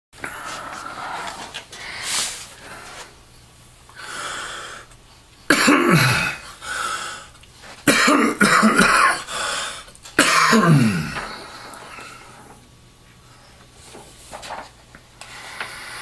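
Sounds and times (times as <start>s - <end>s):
man coughing and clearing throat: 5.5s - 6.4s, 7.8s - 9.3s, 10.2s - 11.4s.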